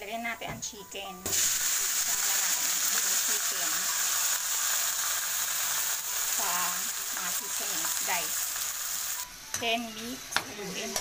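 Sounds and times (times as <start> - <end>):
chicken sizzling in hot oil: 1.2 - 11.0.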